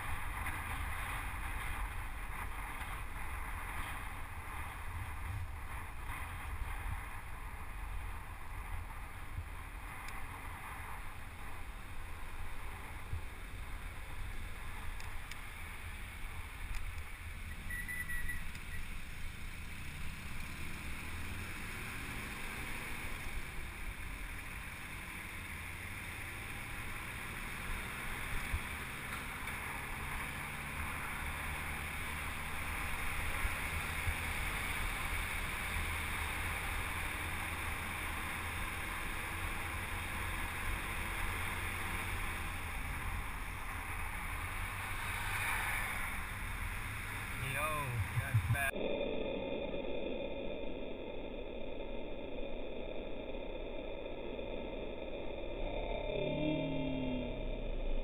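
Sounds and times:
road noise: 0.0s - 58.0s
vehicle engine humming: 0.0s - 58.0s.

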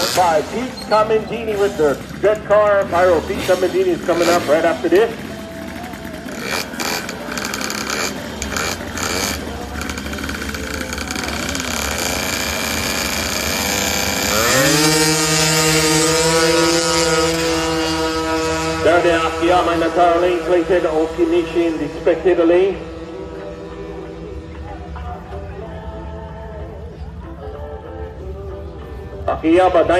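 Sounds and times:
event noise: 0.0s - 15.0s
scooter engine revving: 0.0s - 25.5s
voices: 0.0s - 29.9s.

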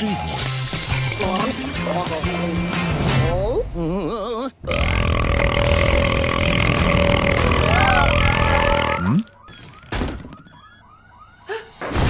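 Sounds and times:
long cartoon burp: 4.6s - 9.2s.

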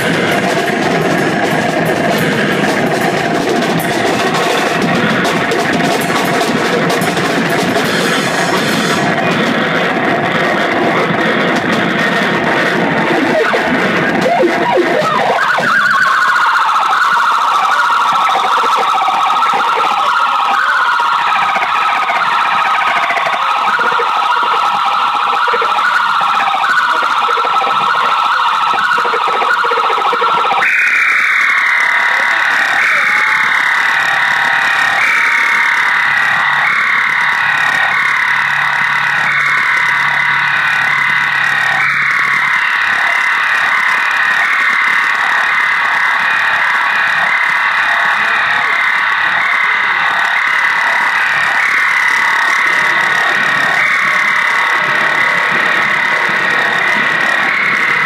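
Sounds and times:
electronic drone with siren sweeps: 0.0s - 58.0s.

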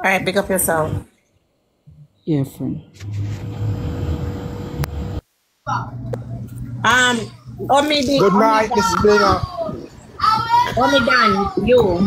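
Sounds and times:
low rumbling noise with hum: 2.9s - 12.0s.

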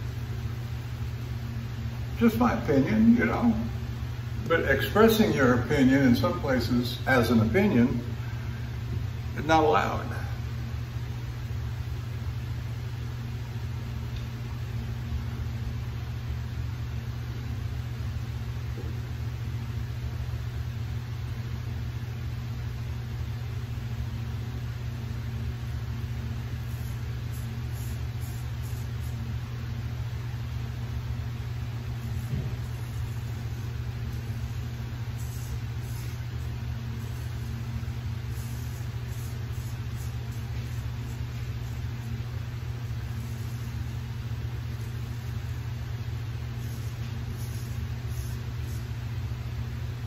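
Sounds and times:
steady low hum: 0.0s - 50.0s.

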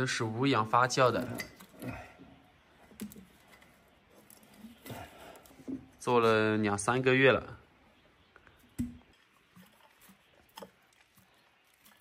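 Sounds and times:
faint scrapes and ticks: 2.7s - 6.0s, 8.3s - 12.0s.

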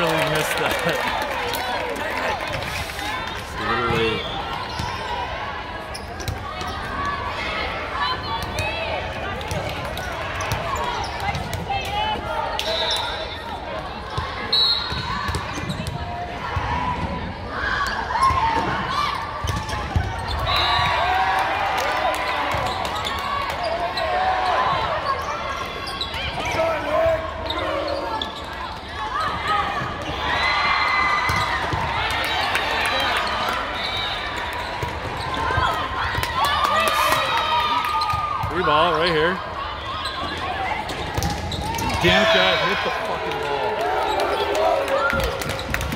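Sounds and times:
chatter of many voices: 34.7s - 45.9s
players calling: 34.9s - 45.9s.

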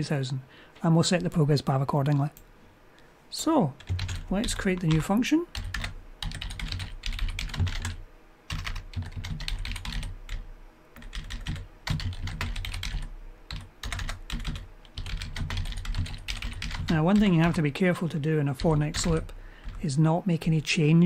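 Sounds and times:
typing on computer keyboard: 3.8s - 10.4s, 11.0s - 19.8s.

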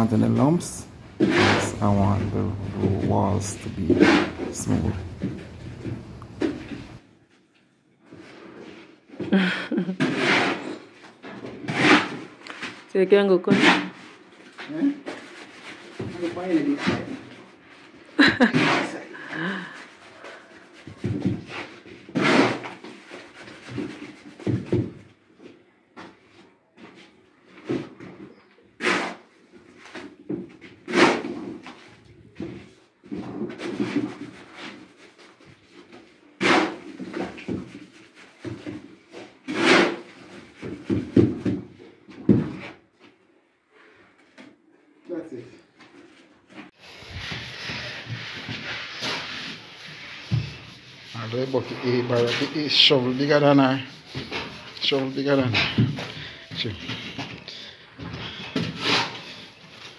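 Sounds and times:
shovel scraping a plywood board: 1.2s - 5.5s, 10.0s - 12.8s, 13.5s - 24.9s, 27.7s - 41.6s, 46.6s - 59.9s.

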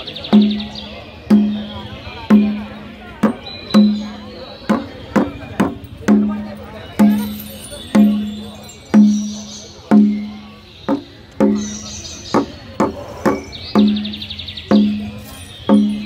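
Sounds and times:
ringing pitched percussion strokes: 0.0s - 16.0s.

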